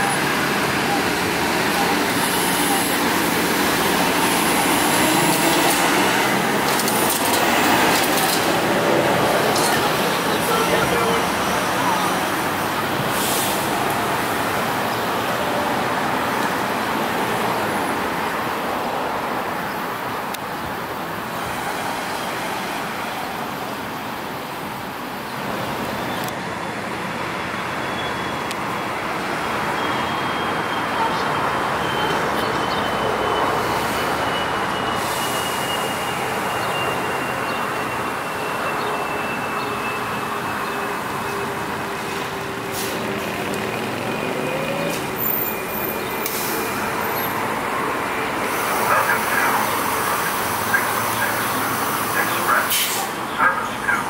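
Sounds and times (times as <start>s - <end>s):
road noise: 0.0s - 54.0s.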